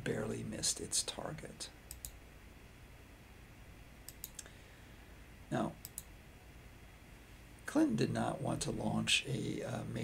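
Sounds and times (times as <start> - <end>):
sharp computer clicks: 1.9 - 2.2, 4.1 - 4.5, 5.8 - 6.1.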